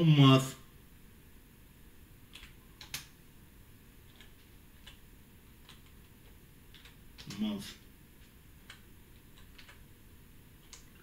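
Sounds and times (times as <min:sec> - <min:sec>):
computer keyboard clicks: 0:02.3 - 0:03.1, 0:04.1 - 0:05.0, 0:05.6 - 0:06.1, 0:06.7 - 0:07.4, 0:08.2 - 0:09.8, 0:10.6 - 0:11.0.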